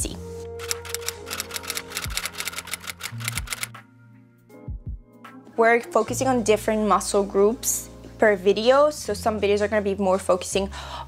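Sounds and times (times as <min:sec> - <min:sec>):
soft background music: 0:00.0 - 0:11.0
typewriter key clicks: 0:00.6 - 0:03.7.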